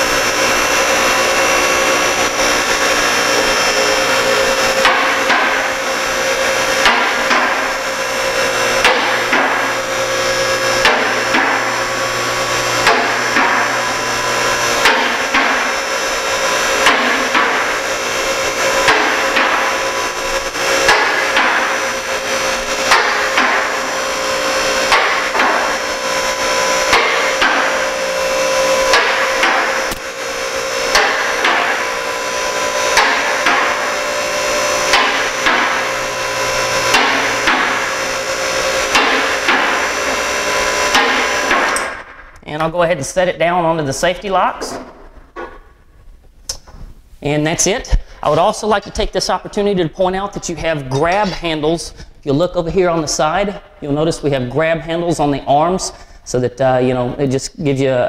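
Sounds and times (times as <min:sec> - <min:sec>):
hydraulic power unit running: 0:00.0 - 0:58.0.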